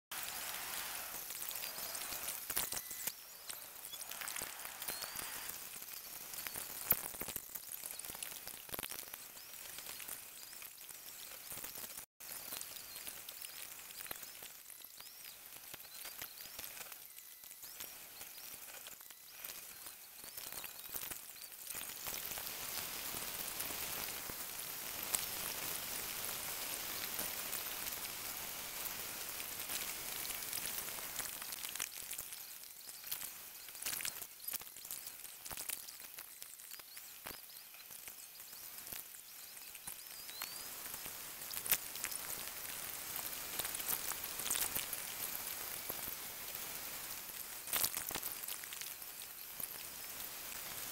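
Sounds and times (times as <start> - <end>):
crackling hiss: 0.1 - 50.9.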